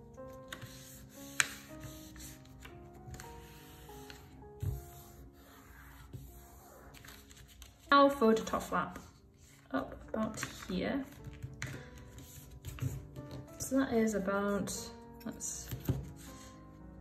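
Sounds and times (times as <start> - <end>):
soft background music: 0.0 - 17.0
paper being folded: 0.3 - 7.9.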